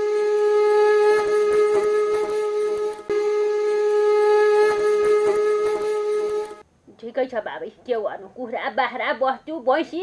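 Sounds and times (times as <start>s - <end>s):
long wind instrument note: 0.0s - 6.6s.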